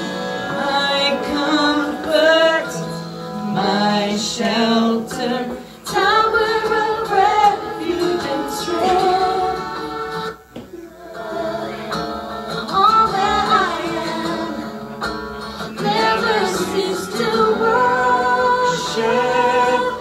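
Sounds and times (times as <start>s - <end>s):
women singing into microphones: 0.0s - 20.0s.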